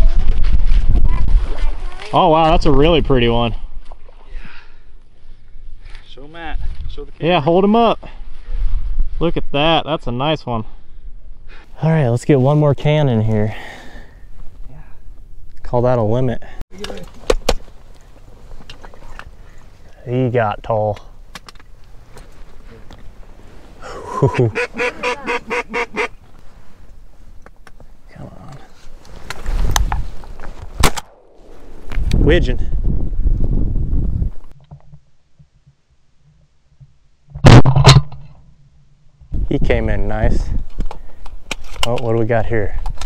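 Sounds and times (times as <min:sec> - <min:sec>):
wind rumble on microphone: 0:00.0 - 0:03.2, 0:29.2 - 0:30.8, 0:31.4 - 0:34.6, 0:39.2 - 0:41.0
shotgun shots: 0:30.8 - 0:31.8.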